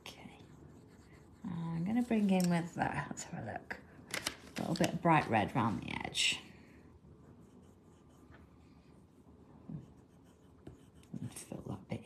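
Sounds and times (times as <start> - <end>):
pencil scratching on paper: 0.0 - 2.4, 7.2 - 11.8.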